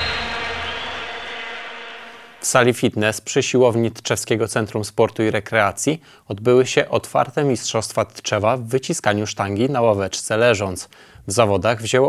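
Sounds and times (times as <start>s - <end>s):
whooshing music sting: 0.0s - 2.4s.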